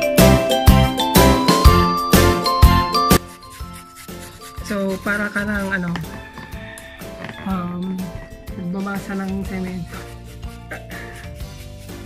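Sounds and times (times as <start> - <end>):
jingling bell-like music: 0.0 - 7.1.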